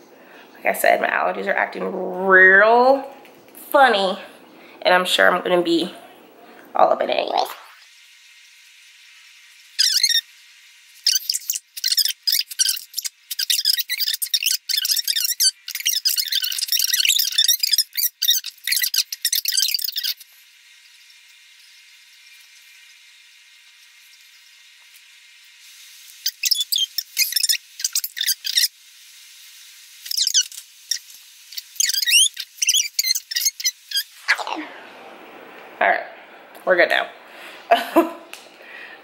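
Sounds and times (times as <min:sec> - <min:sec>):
voice: 0:00.6 - 0:06.1, 0:06.7 - 0:07.7, 0:34.2 - 0:34.9, 0:35.8 - 0:38.2
high-pitched squeaky chatter: 0:09.8 - 0:10.2, 0:11.1 - 0:20.2, 0:26.2 - 0:28.7, 0:30.1 - 0:34.7
quiet hiss: 0:19.9 - 0:39.0.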